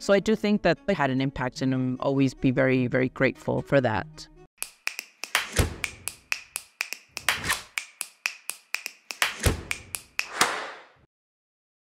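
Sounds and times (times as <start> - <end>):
sharp clicks and taps: 4.6 - 10.8
deep thud: 5.6 - 5.8.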